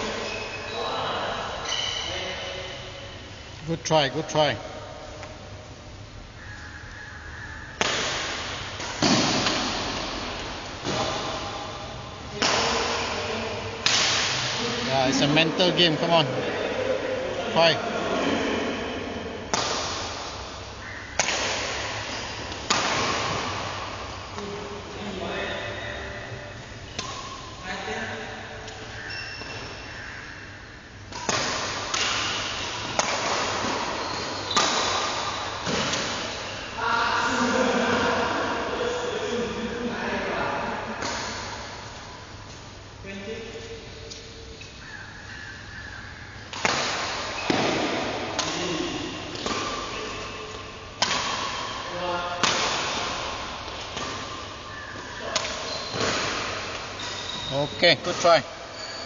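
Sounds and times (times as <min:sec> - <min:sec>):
court shoes squeaking: 0:00.0 - 0:03.0, 0:20.5 - 0:23.6, 0:25.9 - 0:36.8, 0:46.5 - 0:59.0
rackets striking shuttlecock: 0:07.8 - 0:14.8, 0:19.5 - 0:24.5, 0:26.8 - 0:27.6, 0:31.0 - 0:36.6, 0:41.0 - 0:42.6, 0:46.5 - 0:59.0.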